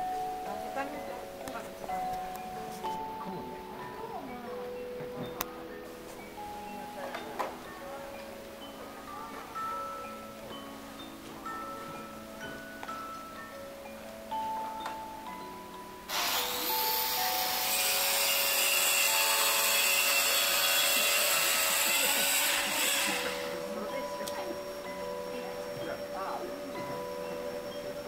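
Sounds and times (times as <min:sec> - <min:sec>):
music-box-like clock melody: 0:00.0 - 0:28.0
loud steady hiss: 0:07.6 - 0:28.0.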